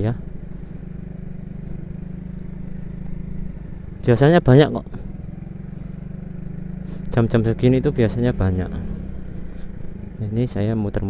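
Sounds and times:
motorcycle engine running: 0.0 - 11.0
road noise: 0.0 - 11.0.

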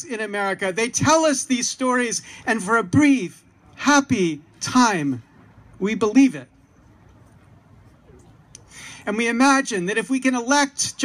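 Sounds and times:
soft intake of breath: 8.6 - 9.0.

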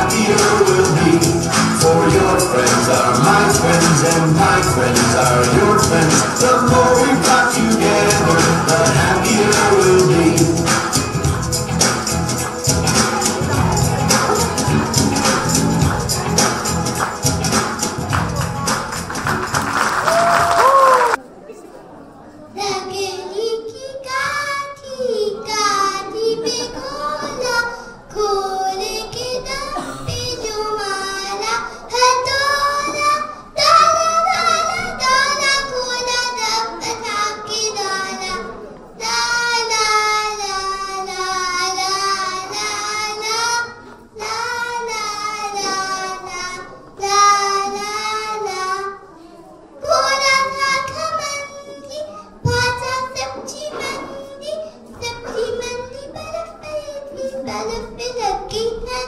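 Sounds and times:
girl singing into a microphone: 22.5 - 59.0.

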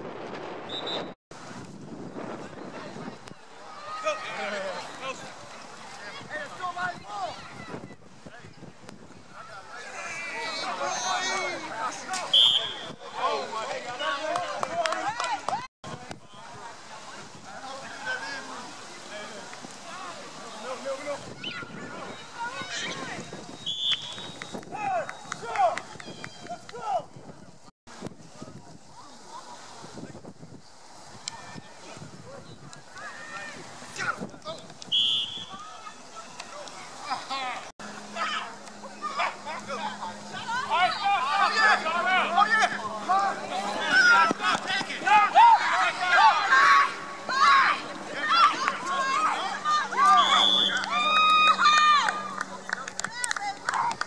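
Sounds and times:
referee's whistle blast: 12.3 - 12.9, 23.6 - 24.4, 34.9 - 35.6, 50.0 - 50.9
people shouting: 37.0 - 54.0.

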